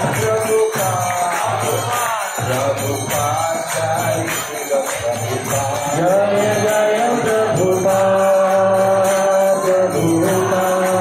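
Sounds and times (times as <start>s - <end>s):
person chanting a mantra: 0.0s - 11.0s.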